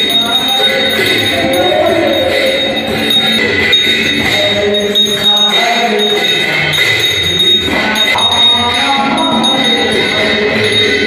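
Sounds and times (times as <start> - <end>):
high metallic ringing: 0.0 - 11.0
jingling percussion: 0.0 - 11.0
voices singing devotional music: 0.0 - 11.0.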